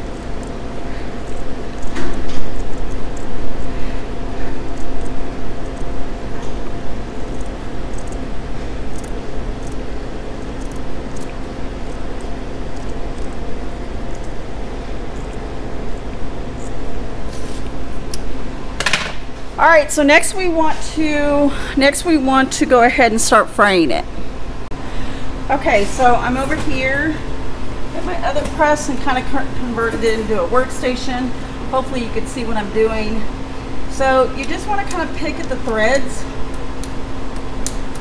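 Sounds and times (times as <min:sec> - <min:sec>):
steady background hum: 0:00.0 - 0:38.0.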